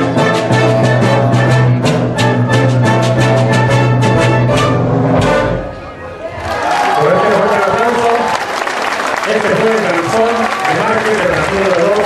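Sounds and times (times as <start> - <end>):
wind band brass chord: 0.0 - 5.9
audience applause: 6.0 - 12.0.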